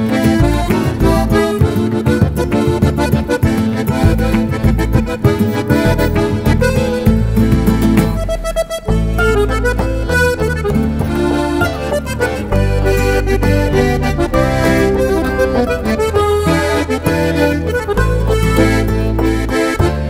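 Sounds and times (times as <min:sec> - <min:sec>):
button accordion melody: 0:00.0 - 0:20.0
held low bass notes: 0:00.0 - 0:20.0.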